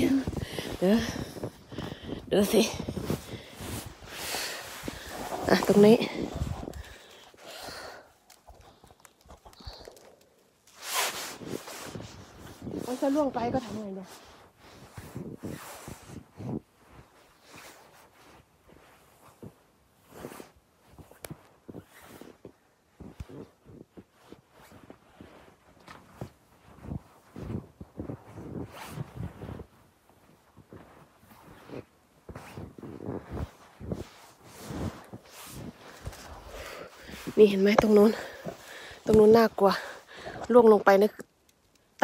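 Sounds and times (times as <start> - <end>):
snow pusher scraping through snow: 0.0 - 7.1, 10.7 - 22.4, 23.0 - 41.1
soft knocks and crunches: 20.8 - 42.0.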